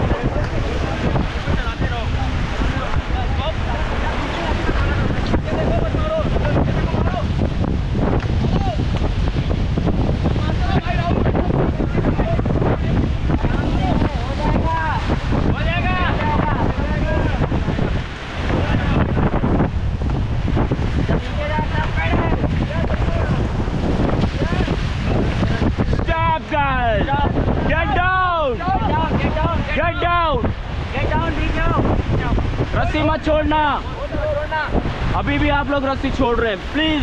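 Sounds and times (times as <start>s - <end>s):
river water churning: 0.0s - 37.0s
wind buffeting microphone: 0.0s - 37.0s.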